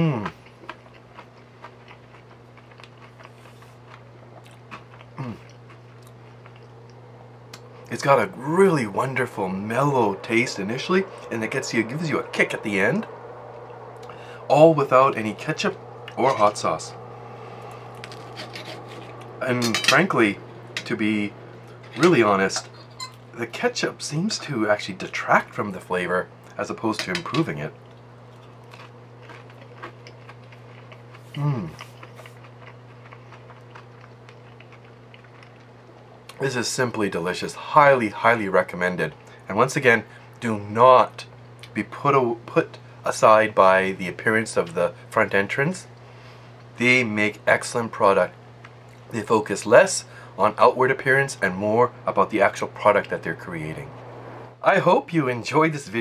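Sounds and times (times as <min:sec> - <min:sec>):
chewing crispy food: 0:00.0 - 0:08.4, 0:17.6 - 0:19.4, 0:27.8 - 0:36.8
steady low hum: 0:00.0 - 0:56.0
person humming mm: 0:05.2 - 0:05.5, 0:31.4 - 0:31.8.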